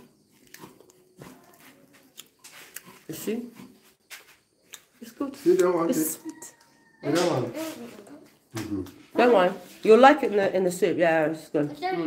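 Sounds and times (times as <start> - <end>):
chewing and crunching dried fish: 0.0 - 3.2.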